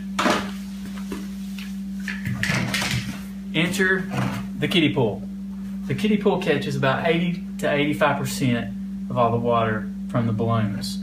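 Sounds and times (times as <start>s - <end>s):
low electrical hum: 0.0s - 11.0s
rustling and handling noise: 0.2s - 3.4s.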